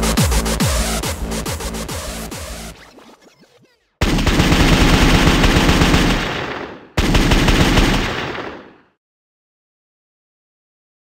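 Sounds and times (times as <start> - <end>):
automatic gunfire bursts: 4.0 - 8.7.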